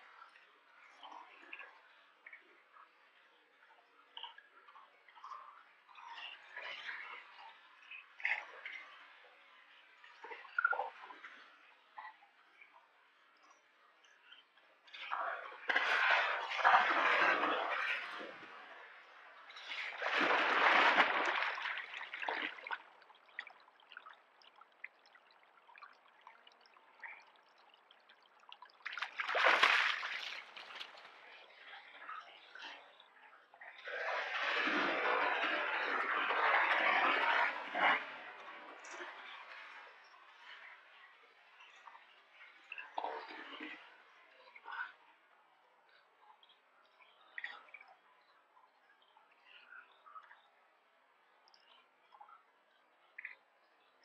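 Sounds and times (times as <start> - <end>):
water: 0.0 - 54.0
bear splashing in water: 28.8 - 31.1.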